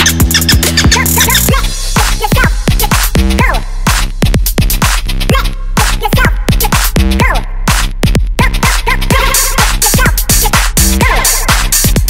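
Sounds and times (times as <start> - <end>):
dark electronic music: 0.0 - 12.0.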